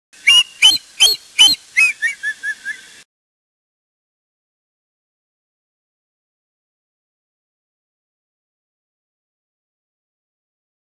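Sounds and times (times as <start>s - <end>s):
shrill bird calls: 0.2s - 3.0s.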